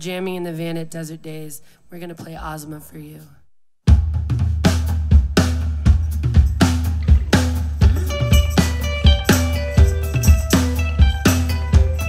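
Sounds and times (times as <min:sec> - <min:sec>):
rock drum kit beat: 0:03.9 - 0:12.0
bass guitar line: 0:05.3 - 0:12.0.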